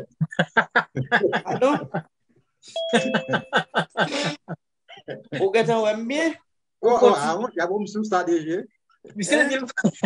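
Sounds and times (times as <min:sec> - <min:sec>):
two-note doorbell chime: 0:02.8 - 0:03.6.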